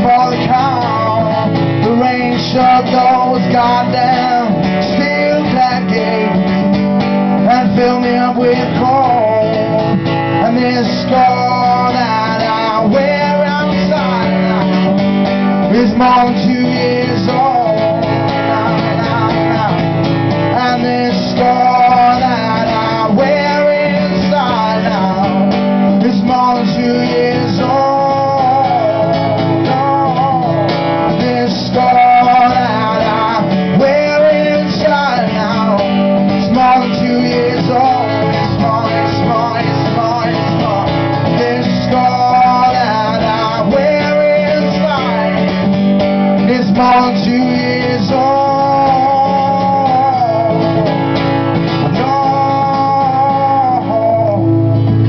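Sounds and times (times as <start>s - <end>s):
acoustic guitar strummed: 0.0s - 55.0s
man singing: 0.0s - 55.0s.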